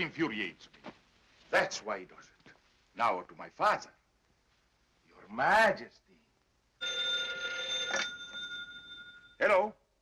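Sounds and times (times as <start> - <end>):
telephone bell ringing: 6.8 - 9.4.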